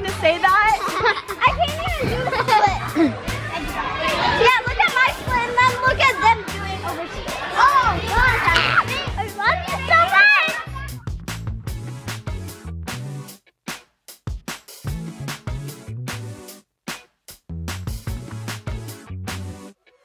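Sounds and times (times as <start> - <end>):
girls talking and calling out: 0.0 - 11.1
background music with low beat: 10.7 - 19.7.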